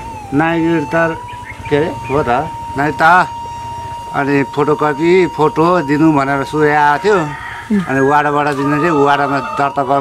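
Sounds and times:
man talking: 0.2 - 3.5, 4.1 - 10.0.

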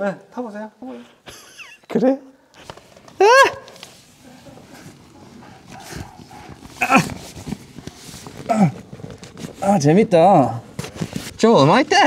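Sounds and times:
plastic rustling: 2.6 - 12.0
man yelping: 3.2 - 3.7, 6.8 - 7.2.

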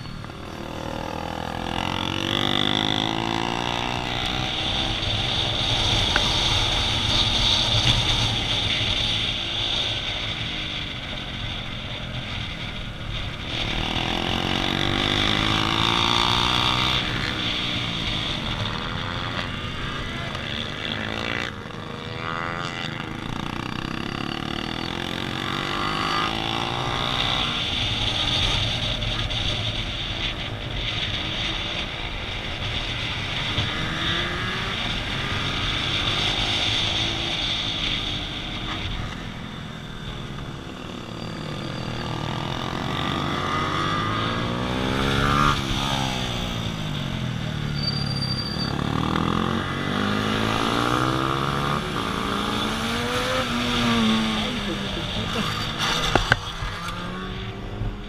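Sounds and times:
motorcycle engines revving: 0.0 - 58.0
wind and road noise: 0.0 - 58.0.

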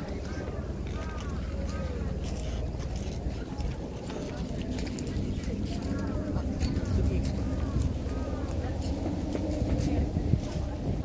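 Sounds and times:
crowd talking: 0.0 - 11.0
wind rumble on microphone: 0.0 - 11.0.

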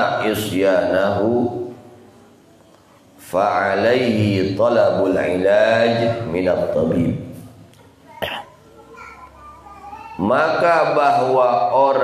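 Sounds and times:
faint background voices: 7.2 - 11.3
man coughing: 8.2 - 8.6.

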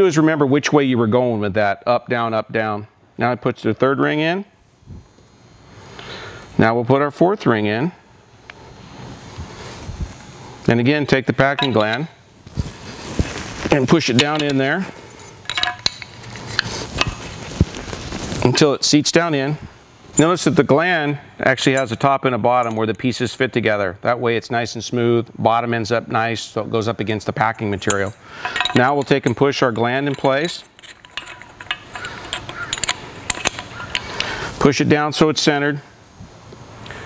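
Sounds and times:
soft rubbing: 11.6 - 18.5
small metal clicks: 15.4 - 17.2, 27.8 - 34.4.

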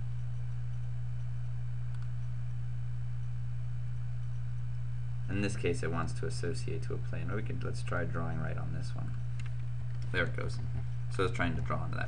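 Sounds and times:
steady low hum: 0.0 - 12.0
faint click: 1.9 - 2.1.

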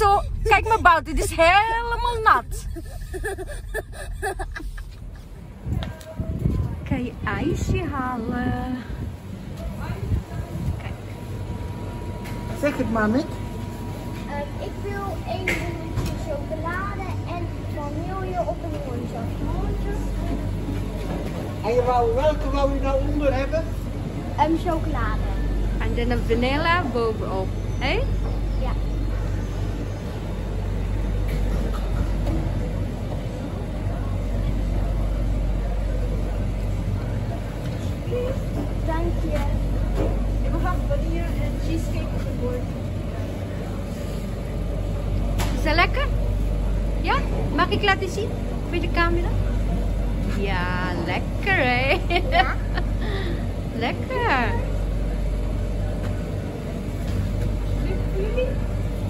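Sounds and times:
faint voices: 0.0 - 59.0
low hum and rumble: 0.0 - 59.0.

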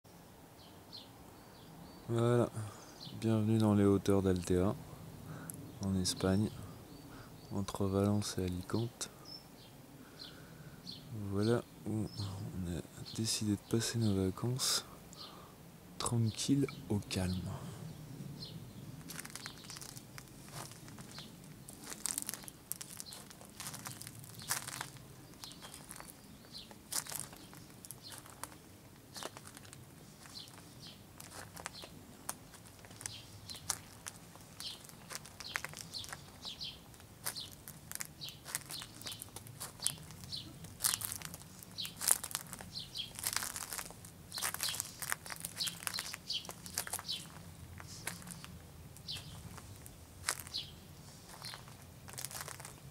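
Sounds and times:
bird chirp: 0.1 - 52.9
footsteps on gravel: 19.0 - 52.9.

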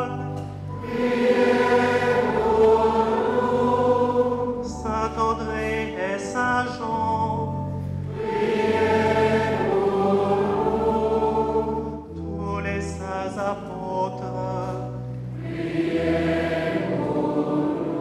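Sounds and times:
choir singing slow chant: 0.0 - 5.9, 8.1 - 12.4, 15.2 - 18.0.

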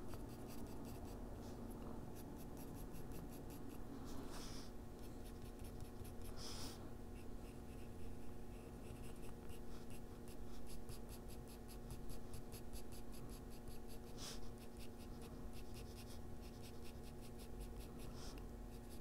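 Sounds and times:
pencil scratching on paper: 0.0 - 19.0.

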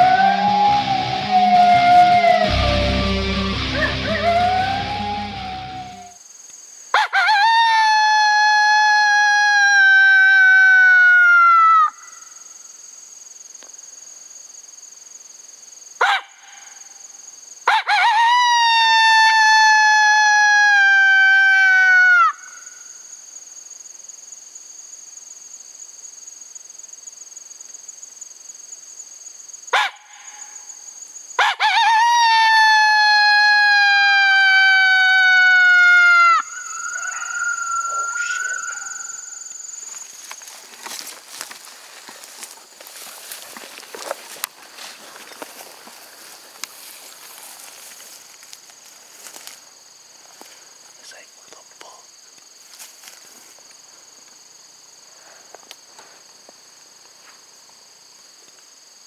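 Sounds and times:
coyote call howls: 0.0 - 6.2, 7.0 - 12.3, 17.7 - 22.9, 31.4 - 39.6.

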